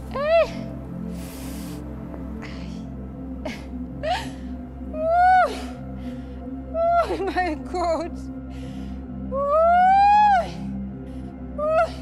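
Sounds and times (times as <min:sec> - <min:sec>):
soft background music: 0:00.0 - 0:12.0
woman sobbing: 0:02.4 - 0:12.0.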